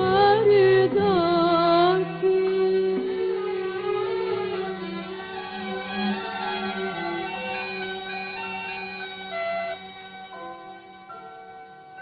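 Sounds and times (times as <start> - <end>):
bowed strings holding long notes: 0.0 - 12.0.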